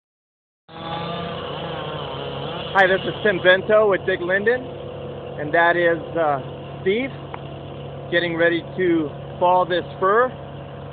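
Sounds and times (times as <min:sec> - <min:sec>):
chainsaw engine running: 0:00.7 - 0:10.9.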